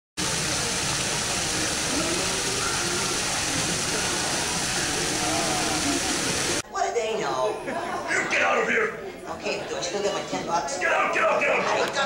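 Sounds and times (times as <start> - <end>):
fountain water splashing: 0.2 - 6.6
faint indistinct voices: 0.2 - 12.0.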